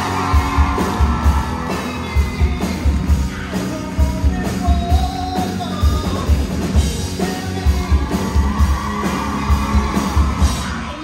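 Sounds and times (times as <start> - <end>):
drum kit beat: 0.0 - 11.0
electric guitars: 0.0 - 11.0.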